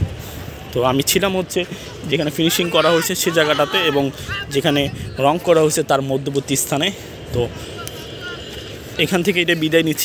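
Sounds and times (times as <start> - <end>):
low rumble of distant engines: 0.0 - 10.0.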